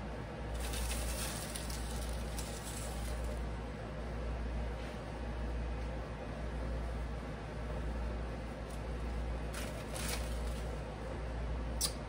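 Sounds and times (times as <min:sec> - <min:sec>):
low room hum: 0:00.0 - 0:12.0
crumbs sprinkled rustling: 0:00.5 - 0:03.4.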